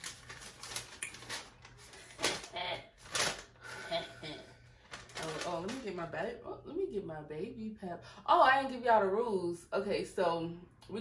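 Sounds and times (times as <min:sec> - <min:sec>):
paper rustling: 0:00.0 - 0:03.6, 0:04.8 - 0:06.0.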